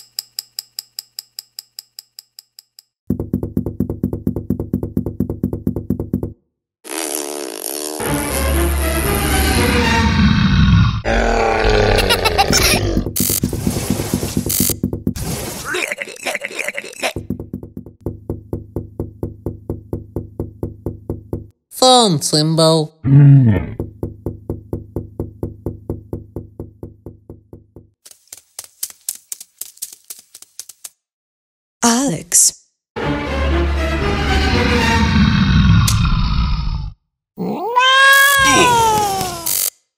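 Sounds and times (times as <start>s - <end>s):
rapid cartoon knocks: 3.1s - 6.4s, 12.9s - 15.4s, 17.2s - 21.6s, 23.8s - 28.0s
pitched groan slowly falling: 9.0s - 13.1s
cartoon monster growling grunt: 9.4s - 13.1s, 23.0s - 23.8s.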